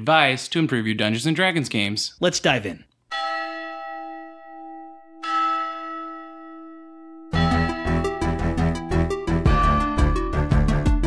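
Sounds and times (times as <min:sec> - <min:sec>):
bell ringing: 0:03.1 - 0:10.6.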